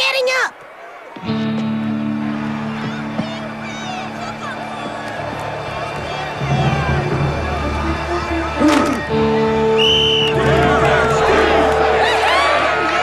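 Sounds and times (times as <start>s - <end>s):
stadium crowd cheering: 0.0s - 13.0s
tense background music: 4.1s - 12.5s.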